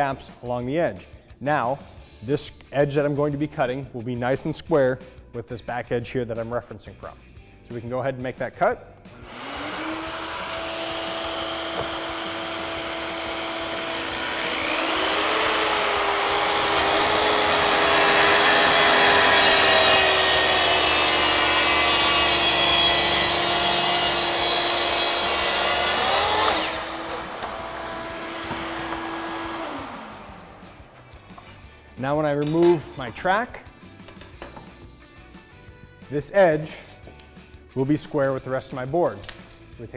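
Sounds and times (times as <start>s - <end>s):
track saw cutting plywood: 9.2s - 31.4s.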